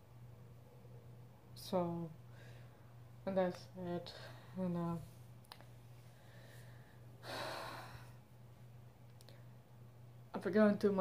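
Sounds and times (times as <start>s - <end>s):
faint low hum: 0.0s - 11.0s
woman breathing: 2.2s - 3.0s, 4.0s - 4.8s, 6.0s - 8.4s.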